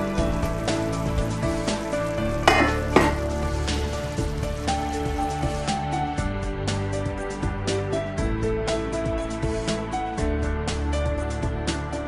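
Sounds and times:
curry sizzling in a pan: 0.0s - 6.0s
background music: 0.0s - 12.0s
stirring in a pan: 0.5s - 5.5s.

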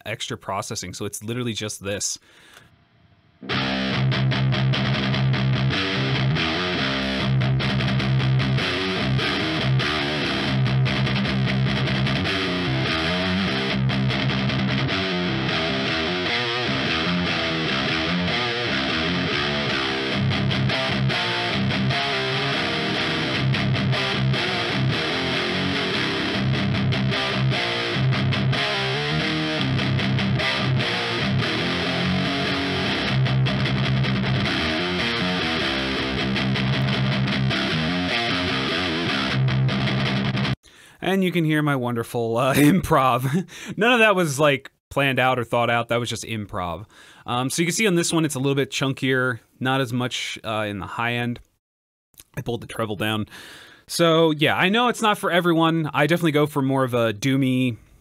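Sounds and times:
distorted electric guitar riffing: 3.4s - 40.8s, 42.5s - 43.9s.

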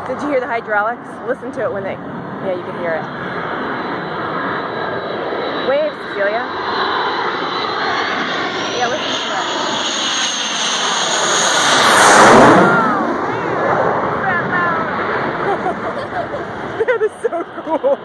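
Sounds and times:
jet flying low overhead: 0.0s - 18.0s.

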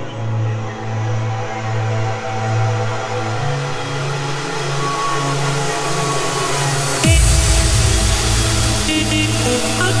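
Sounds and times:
trance music with synths: 0.0s - 10.0s.

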